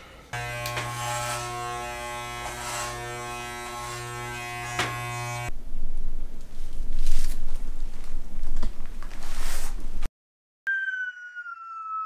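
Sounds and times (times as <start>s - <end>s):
hair clippers buzzing: 0.4s - 5.5s.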